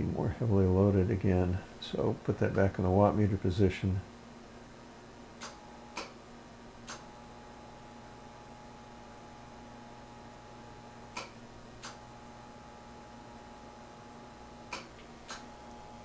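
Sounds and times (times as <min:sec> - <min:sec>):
low hum from amplifier: 0:00.0 - 0:16.0.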